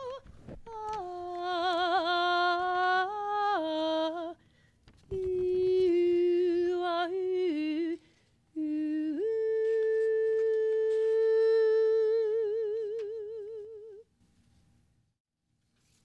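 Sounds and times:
woman singing wordlessly: 0:00.0 - 0:04.4, 0:05.1 - 0:14.1.

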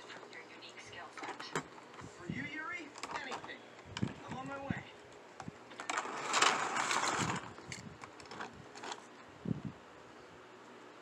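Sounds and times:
plastic packaging crinkling: 0:05.7 - 0:09.2.

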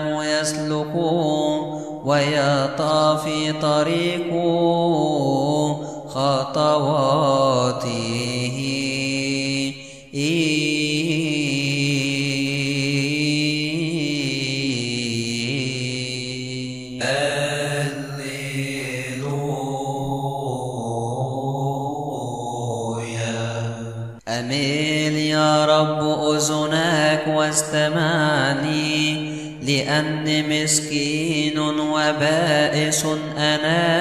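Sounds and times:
person chanting: 0:00.0 - 0:34.0.

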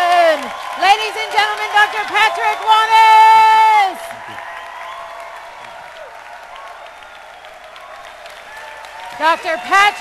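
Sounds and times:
large audience applauding: 0:00.0 - 0:10.0.

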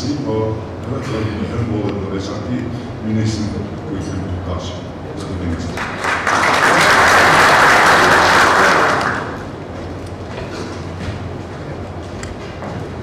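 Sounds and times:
audience applauding: 0:05.7 - 0:09.6.

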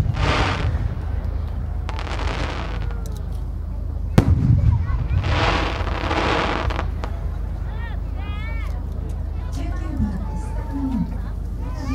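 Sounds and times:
firework bursting with bang: 0:00.0 - 0:01.0, 0:01.9 - 0:03.0, 0:04.2 - 0:07.2
low echoing rumble: 0:00.0 - 0:08.2.

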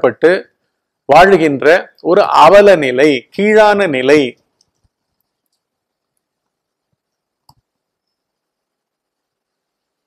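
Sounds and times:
man speaking: 0:00.0 - 0:00.5, 0:01.1 - 0:04.4.

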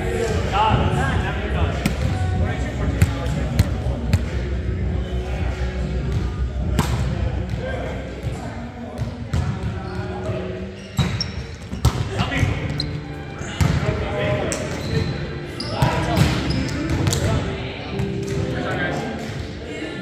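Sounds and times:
players' voices: 0:00.0 - 0:20.0.

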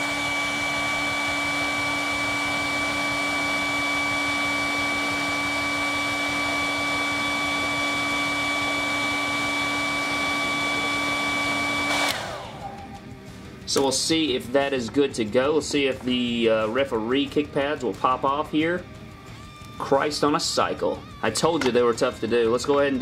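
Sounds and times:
hair dryer blowing: 0:00.0 - 0:13.9.

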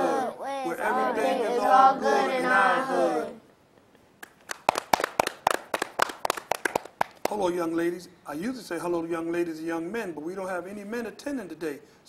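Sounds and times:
people clapping hands: 0:04.2 - 0:07.4.

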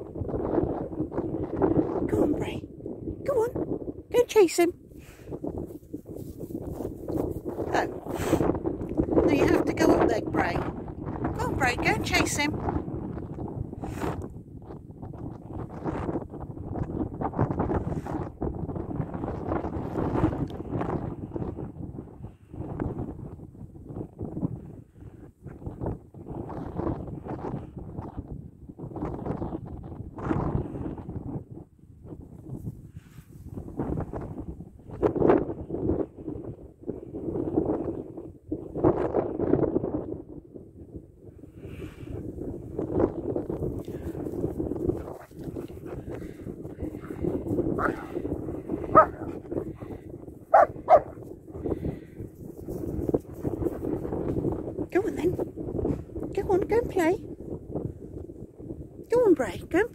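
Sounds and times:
dog barking and whining: 0:47.8 - 0:48.2, 0:48.9 - 0:49.4, 0:50.5 - 0:51.2.

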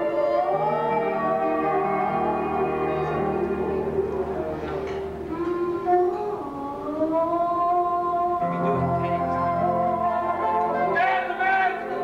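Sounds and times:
sustained accompaniment: 0:00.0 - 0:12.0.

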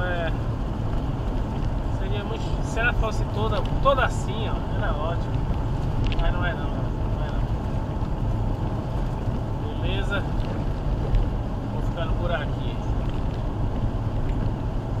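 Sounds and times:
car interior road rumble: 0:00.0 - 0:15.0.

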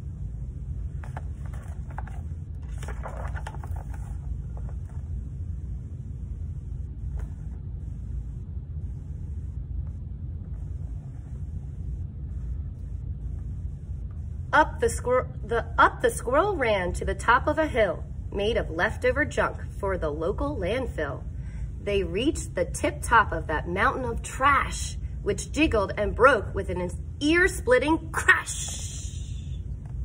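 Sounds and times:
low room rumble: 0:00.0 - 0:30.0
faint rustles of book handling: 0:00.9 - 0:05.2.

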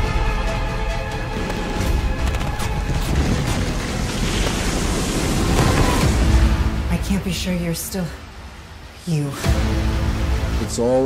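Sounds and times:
dramatic trailer music: 0:00.0 - 0:11.0.

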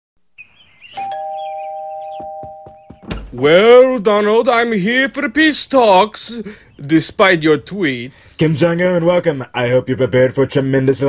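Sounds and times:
two-tone doorbell chime: 0:01.0 - 0:03.0.

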